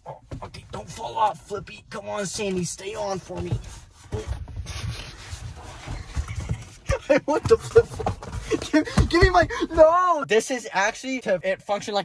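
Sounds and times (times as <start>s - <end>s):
rubbing on leather seats: 2.2s - 9.3s.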